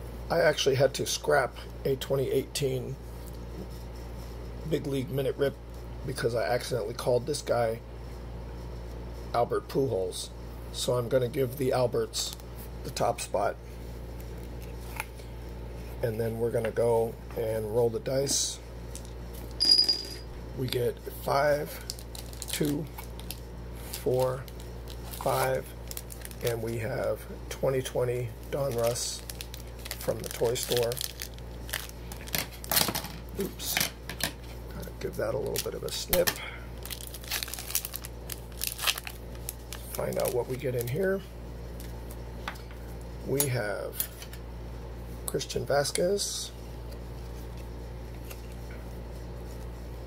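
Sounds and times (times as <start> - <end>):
low steady hum: 0.0 - 50.0
foil wrapper crinkling: 21.6 - 27.1, 27.8 - 42.2.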